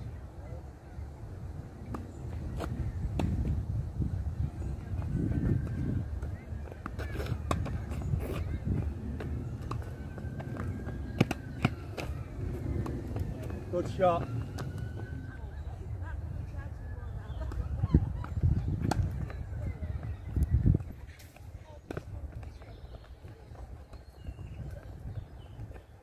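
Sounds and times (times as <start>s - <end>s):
steady low rumble: 0.0s - 25.7s.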